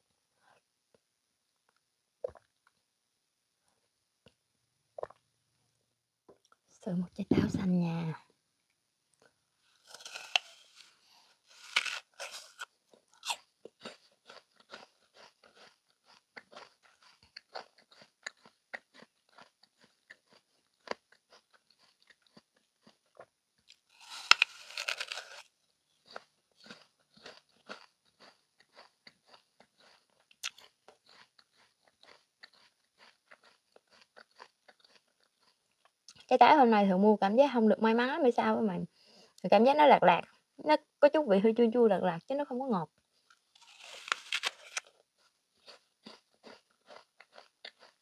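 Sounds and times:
chewing apple: 9.1 - 36.3, 43.2 - 48.0
crunching apple bite: 9.7 - 36.0, 43.5 - 48.0.

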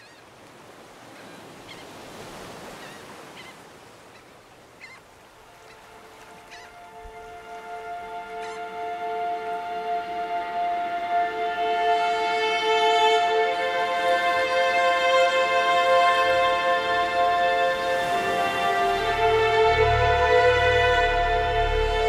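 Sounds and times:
waves washing on shore: 0.0 - 22.0
short bird calls: 2.8 - 5.0
sustained string music: 5.3 - 22.0.

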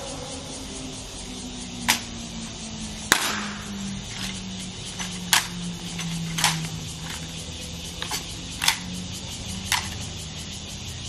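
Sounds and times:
low steady hum: 0.0 - 11.0
hands slapping rifles: 3.1 - 4.3, 8.0 - 8.9.

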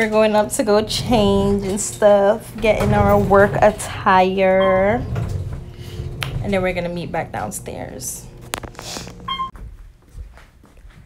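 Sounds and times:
elevator electronic beep: 4.4 - 6.6, 9.2 - 9.6.

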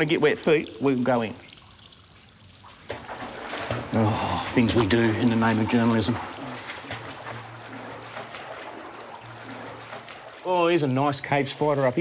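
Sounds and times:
footsteps splashing through water: 0.0 - 12.0.

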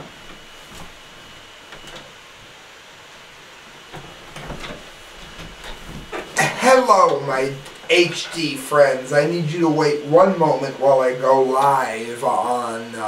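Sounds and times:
person sitting in padded chair: 0.0 - 2.2, 3.6 - 13.0
thin high whine: 0.0 - 13.0.

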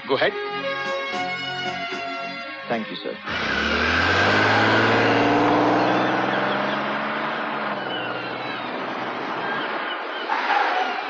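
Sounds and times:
car engine pulling away: 3.2 - 11.0
road noise: 3.2 - 11.0.

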